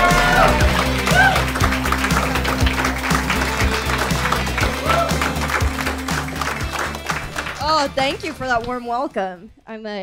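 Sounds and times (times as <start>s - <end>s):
audience applauding: 0.0s - 9.0s
music with steady bass beat: 0.0s - 9.0s.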